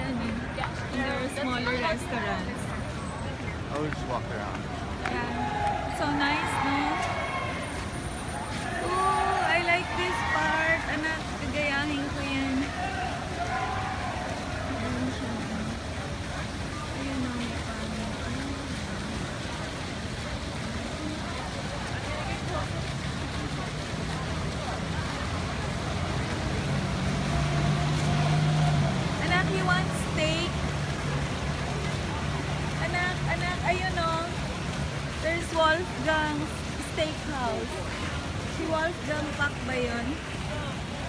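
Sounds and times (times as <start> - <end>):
faint voices: 0.0 - 41.0
outdoor noise: 0.0 - 41.0
street traffic: 0.0 - 41.0.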